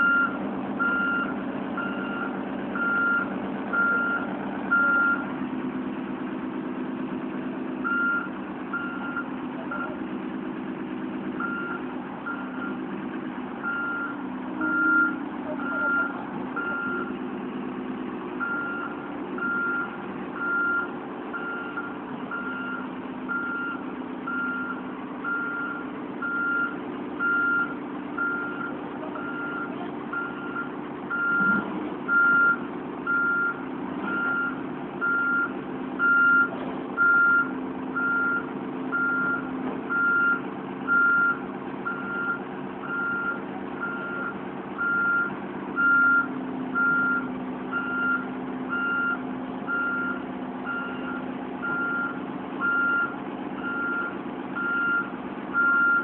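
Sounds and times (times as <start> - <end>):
backup alarm beeping: 0.0 - 5.2
diesel engine running: 0.0 - 56.0.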